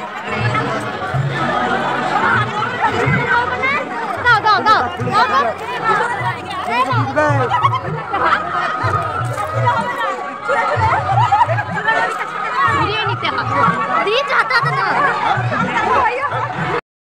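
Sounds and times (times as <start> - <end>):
crowd talking and calling out: 0.0 - 16.8.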